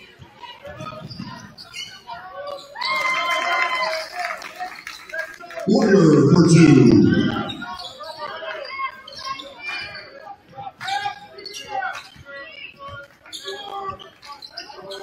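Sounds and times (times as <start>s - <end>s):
voices in a large gym: 0.0s - 15.0s
sneaker squeaks: 0.8s - 2.9s, 7.5s - 10.2s, 11.0s - 15.0s
crowd noise burst: 5.7s - 7.7s.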